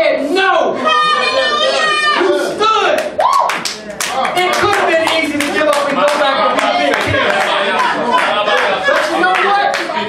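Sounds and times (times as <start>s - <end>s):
people clapping: 2.8s - 10.0s.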